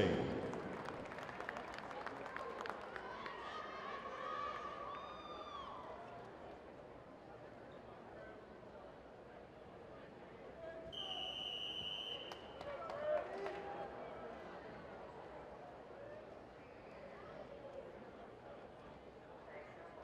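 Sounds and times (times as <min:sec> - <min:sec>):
crowd murmur: 0:00.0 - 0:04.9
referee's whistle blast: 0:11.0 - 0:12.4.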